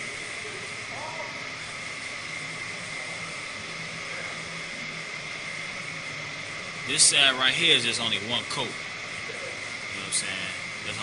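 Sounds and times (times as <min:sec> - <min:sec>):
high whine: 0:00.0 - 0:11.0.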